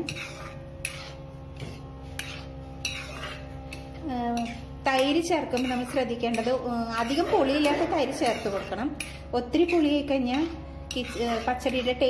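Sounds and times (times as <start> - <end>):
metal spoon scraping a pan: 0.0 - 12.0.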